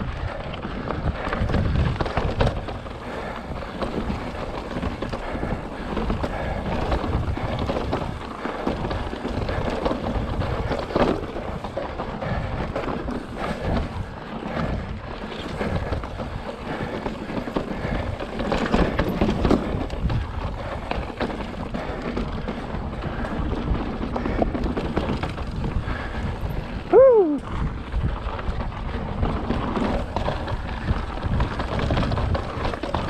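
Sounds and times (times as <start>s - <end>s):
bike drivetrain and frame rattle: 0.0s - 33.0s
bike tyres rumbling on rock: 0.0s - 33.0s
wind buffeting microphone: 0.0s - 33.0s.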